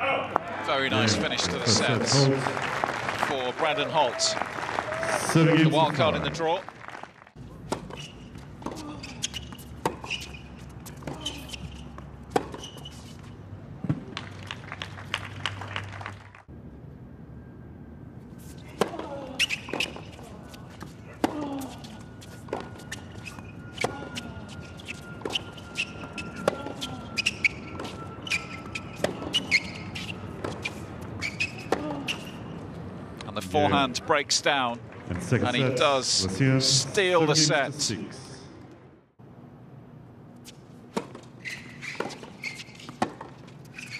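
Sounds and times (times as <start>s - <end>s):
tennis ball bouncing: 7.7s - 12.9s.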